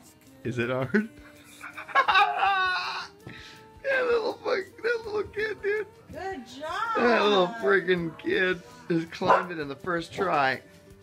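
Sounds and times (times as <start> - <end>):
high-pitched wavering laugh: 1.4 - 3.1.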